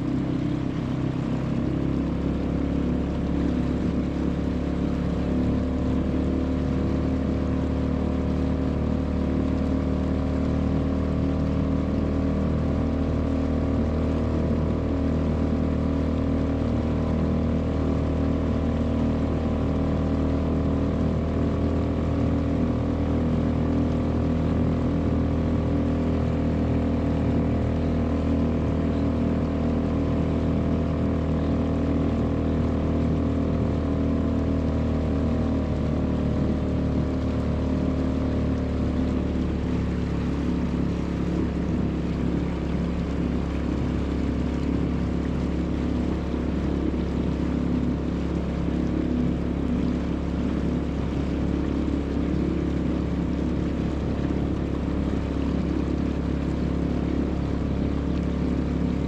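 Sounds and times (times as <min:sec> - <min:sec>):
outboard motor running: 0:00.0 - 0:59.0.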